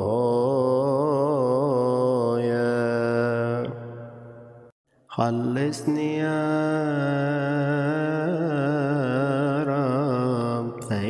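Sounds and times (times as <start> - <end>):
slow melodic chanting: 0.0 - 11.0.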